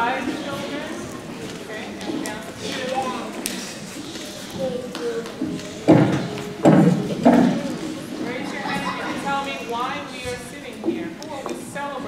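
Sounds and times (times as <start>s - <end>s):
children and adults chattering: 0.0s - 12.0s.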